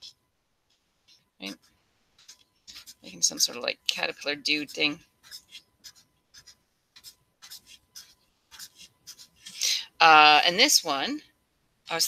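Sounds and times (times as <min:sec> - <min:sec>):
marker scratching on paper: 0:01.4 - 0:09.6.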